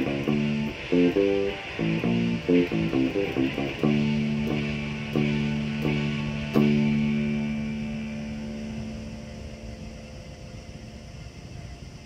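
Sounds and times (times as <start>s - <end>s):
band chord ringing out: 0.0s - 11.1s
low steady rumble: 0.0s - 12.0s.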